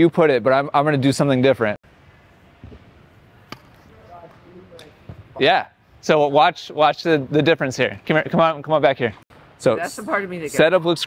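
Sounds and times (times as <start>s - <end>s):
tennis ball bouncing: 3.4s - 5.3s.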